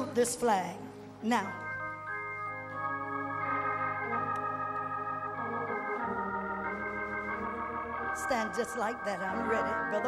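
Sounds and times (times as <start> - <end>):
organ sustained chords: 0.0 - 10.0.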